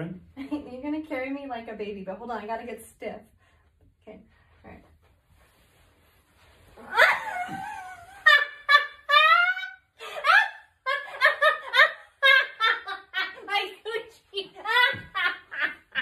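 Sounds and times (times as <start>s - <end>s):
woman laughing: 6.9s - 13.8s, 14.4s - 16.0s.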